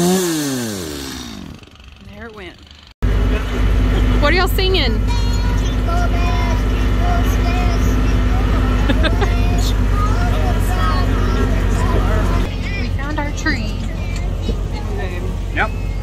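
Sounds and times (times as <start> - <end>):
low engine rumble: 1.0 - 16.0
children singing: 5.1 - 16.0.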